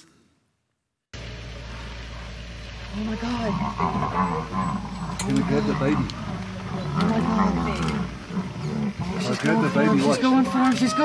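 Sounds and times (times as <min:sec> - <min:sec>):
low rumble and hiss: 0:01.2 - 0:11.0.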